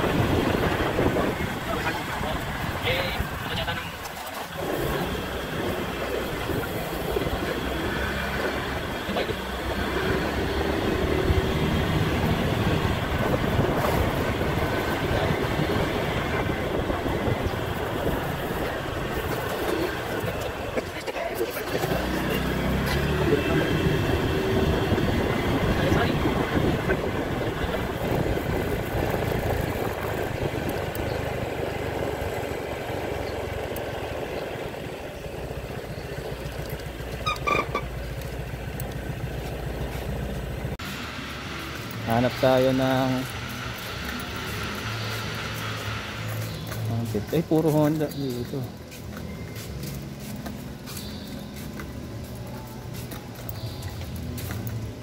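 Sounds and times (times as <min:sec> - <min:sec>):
wind rush on microphone: 0:00.0 - 0:09.0, 0:09.6 - 0:21.0, 0:23.3 - 0:35.6
scooter engine and road noise: 0:00.0 - 0:55.0.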